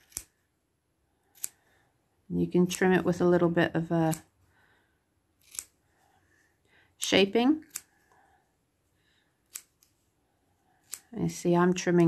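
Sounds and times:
scissors snipping yarn: 0.0s - 0.4s, 1.3s - 1.6s, 3.9s - 4.3s, 5.4s - 5.8s, 7.5s - 8.1s, 9.4s - 10.0s, 10.8s - 11.2s.

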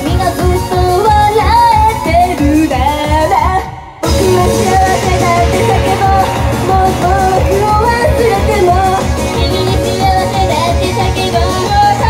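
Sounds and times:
backing track with driving beat: 0.0s - 12.0s
female group singing: 4.1s - 12.0s.

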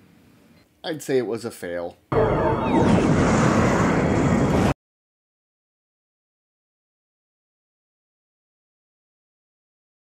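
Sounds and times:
rumbling explosion blast: 2.1s - 4.8s.

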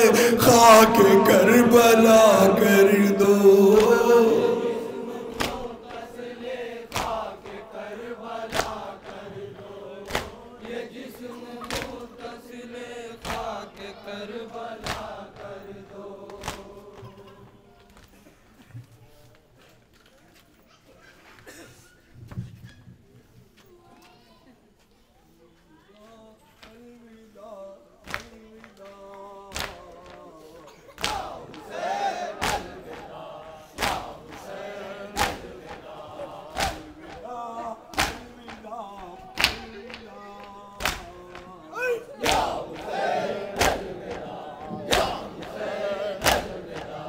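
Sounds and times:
crowd slapping chests: 0.0s - 12.4s, 13.2s - 13.6s, 14.6s - 17.0s, 31.0s - 47.0s
men chanting a lament: 0.0s - 17.7s, 26.8s - 47.0s
chest slaps in unison: 3.7s - 6.2s, 6.9s - 7.3s, 31.0s - 31.6s, 32.4s - 33.1s, 33.8s - 37.3s, 37.9s - 38.6s, 39.4s - 40.0s, 40.8s - 41.2s, 42.2s - 47.0s.

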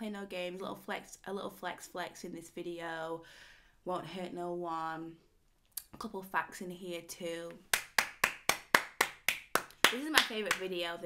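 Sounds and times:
person clapping hands: 7.7s - 10.8s.

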